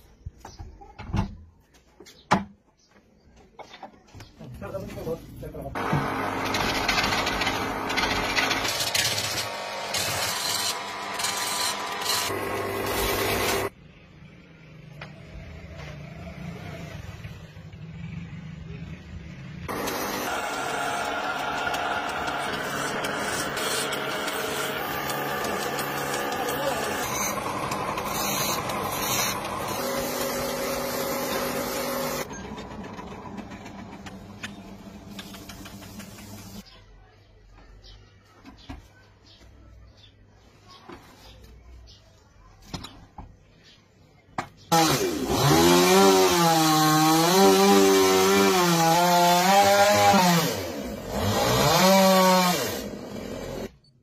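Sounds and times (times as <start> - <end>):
chisel scraping wood on lathe: 5.8 - 13.7, 19.7 - 32.3.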